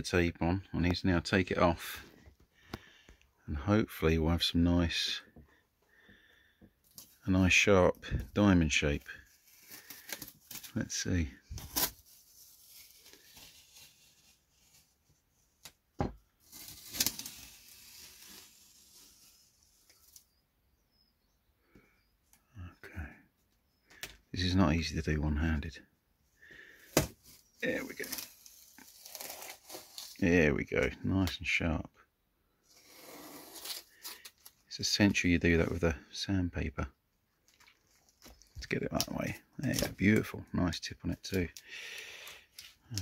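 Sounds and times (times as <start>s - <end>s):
masking tape peeling and crinkling: 9.4s - 10.8s, 11.5s - 14.9s, 16.5s - 20.3s, 27.0s - 30.2s
masking tape peeling off: 16.5s - 20.2s.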